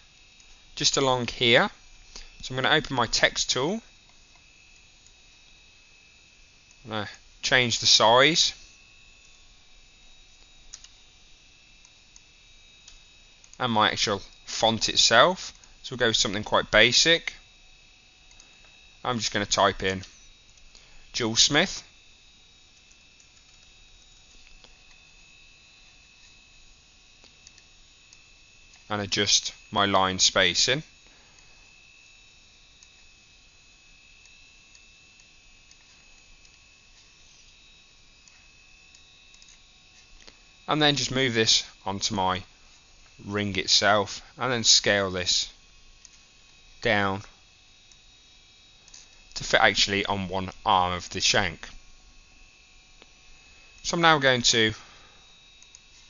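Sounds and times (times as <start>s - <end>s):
faint high whine: 0.0s - 56.0s
low electrical hum: 0.0s - 56.0s
steady low hiss: 0.0s - 56.0s
computer mouse clicks: 10.3s - 11.0s, 11.8s - 13.6s, 22.8s - 23.7s, 27.2s - 28.9s, 38.2s - 40.4s, 55.6s - 56.0s.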